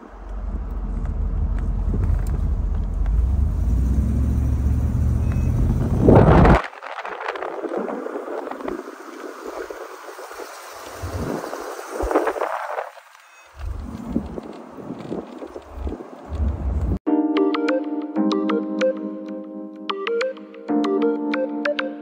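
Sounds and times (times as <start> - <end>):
road and wind noise: 0.0 - 17.0
wind rumbling on microphone: 0.0 - 17.0.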